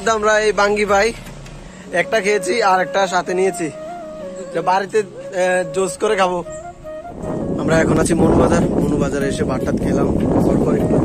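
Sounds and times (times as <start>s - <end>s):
man talking: 0.0s - 1.3s, 1.9s - 6.6s, 7.4s - 11.0s
low rumble: 6.5s - 10.5s.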